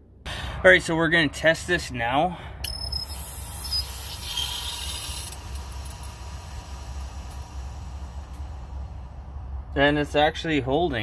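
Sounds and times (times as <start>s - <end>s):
low steady rumble: 0.0s - 11.0s
water hissing through hose valve: 2.9s - 9.0s.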